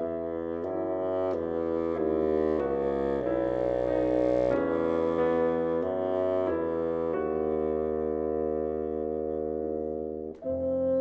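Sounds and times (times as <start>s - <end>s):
bassoon and piano chord: 0.0s - 11.0s.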